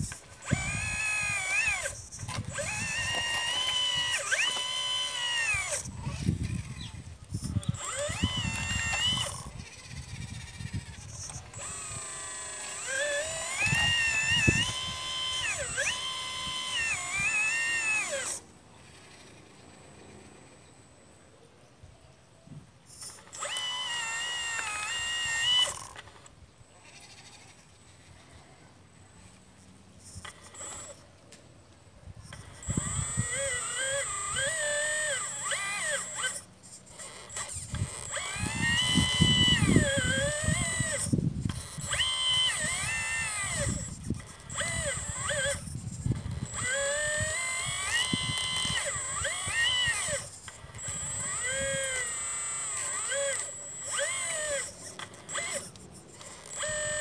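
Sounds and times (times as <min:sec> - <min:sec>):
toy excavator motors whining: 0:00.0 - 0:20.9, 0:22.8 - 0:57.0.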